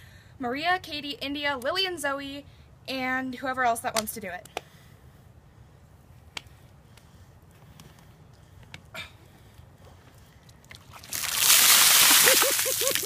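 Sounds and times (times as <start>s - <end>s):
water pouring and splashing: 10.7s - 13.0s.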